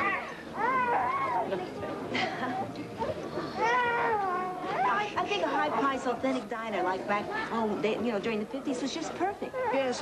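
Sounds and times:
baby crying: 0.0s - 1.6s
party chatter: 0.0s - 10.0s.

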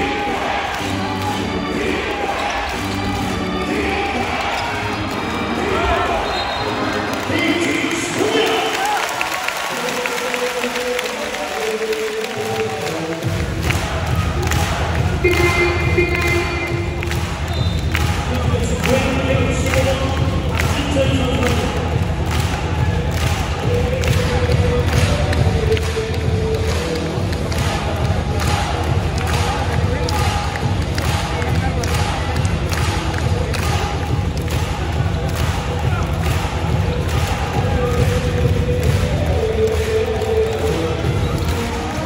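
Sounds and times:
crowd voices: 0.0s - 42.0s.

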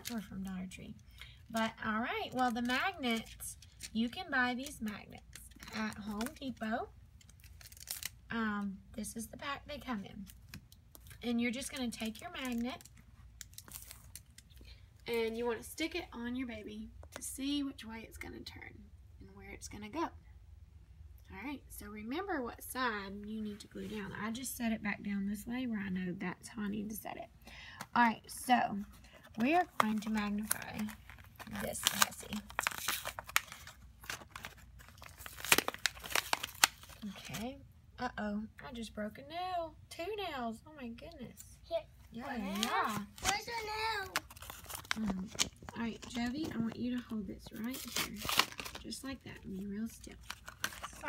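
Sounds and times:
plastic crinkling: 1.6s - 8.2s, 10.2s - 15.1s, 29.1s - 37.4s, 42.1s - 51.0s.

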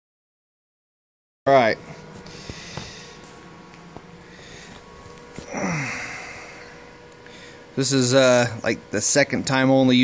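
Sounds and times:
faint steady hum: 1.5s - 10.0s
man grunting: 5.4s - 6.4s.

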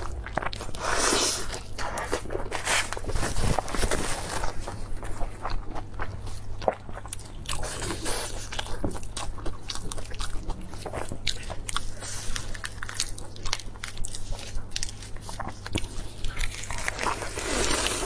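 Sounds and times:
chewing: 0.0s - 18.0s
crunching of crisp lettuce: 0.0s - 18.0s
low steady hum: 0.0s - 18.0s.

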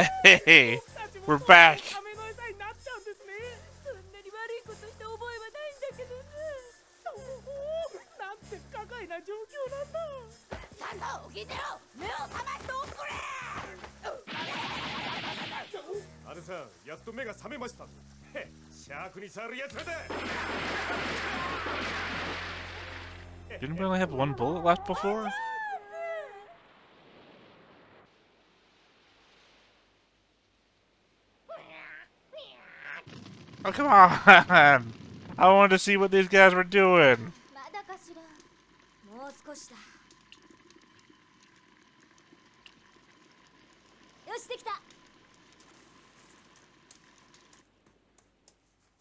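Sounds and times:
person speaking dialogue: 0.0s - 2.0s, 23.6s - 25.3s, 33.7s - 37.4s
small ticks: 37.3s - 49.0s.

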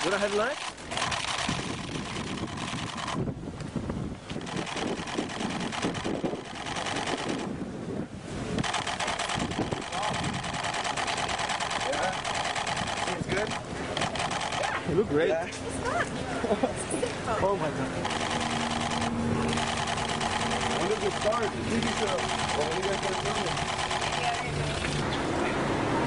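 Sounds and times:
camera shutters clicking: 0.1s - 3.2s, 4.3s - 7.5s, 8.6s - 14.7s, 18.0s - 25.0s.

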